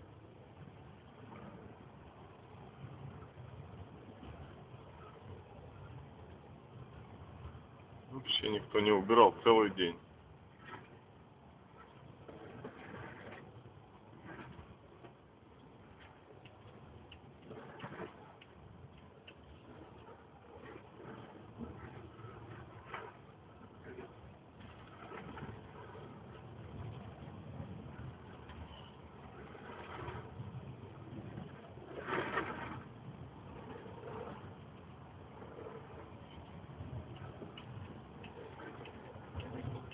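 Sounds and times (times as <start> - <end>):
low rumble of car driving: 0.0 - 39.9
light ticks: 16.4 - 19.6, 37.1 - 39.9.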